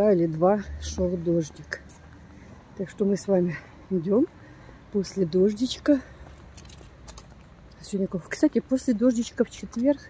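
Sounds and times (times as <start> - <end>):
woman speaking: 0.0 - 1.9, 2.8 - 6.2, 7.8 - 10.0
faint outdoor park background noise: 0.0 - 10.0.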